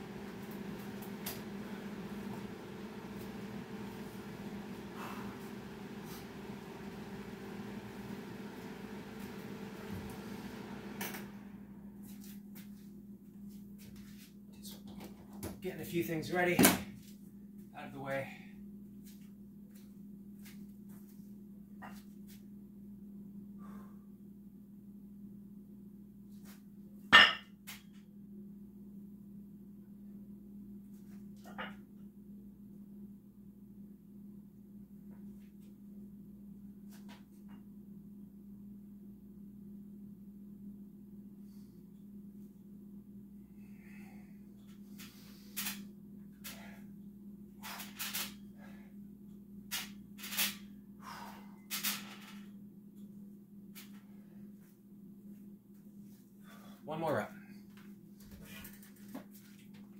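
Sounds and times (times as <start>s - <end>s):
faint steady hum: 0.0s - 59.9s
person breathing hard: 4.9s - 5.5s, 51.0s - 51.7s.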